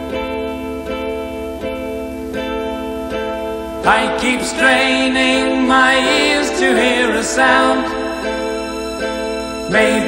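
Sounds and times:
guitar strumming chords: 0.0 - 10.0.

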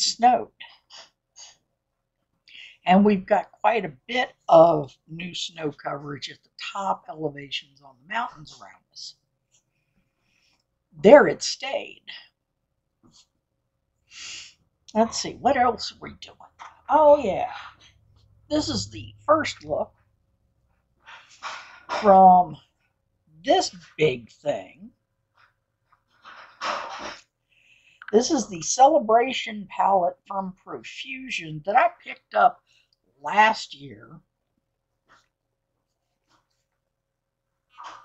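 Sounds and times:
woman speaking: 0.0 - 1.5, 2.5 - 9.2, 11.0 - 12.4, 14.2 - 17.8, 18.5 - 19.9, 21.9 - 22.7, 23.4 - 25.0, 28.1 - 32.6, 33.2 - 34.2.

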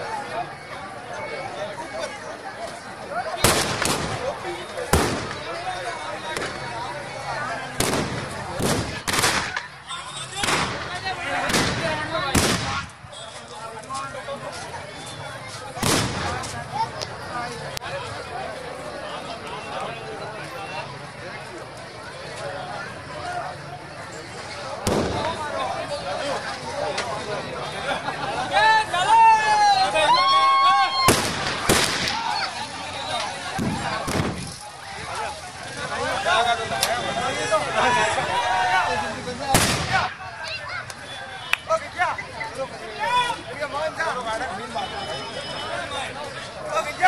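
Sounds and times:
crowd chatter: 0.0 - 47.0
firecrackers banging: 3.3 - 13.2, 15.4 - 17.2, 24.7 - 27.2, 30.9 - 37.3, 39.3 - 41.0.

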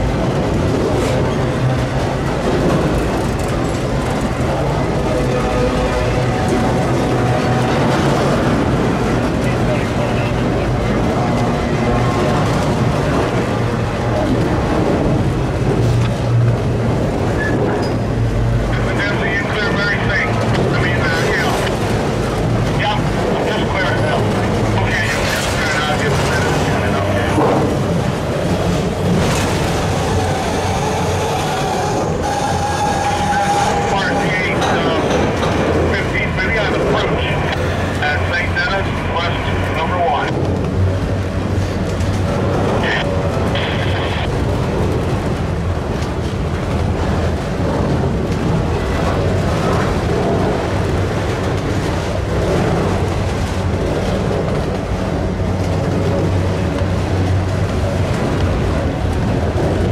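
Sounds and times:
train wheels rumbling on rails: 0.0 - 59.9
high-pitched wheel squealing: 29.9 - 34.8.

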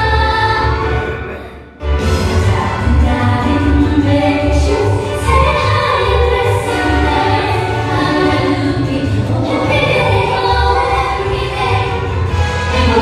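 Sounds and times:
group singing in harmony: 2.3 - 13.0.

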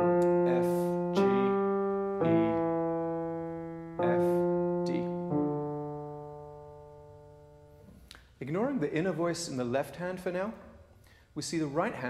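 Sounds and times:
grand piano bass note: 0.0 - 7.9.

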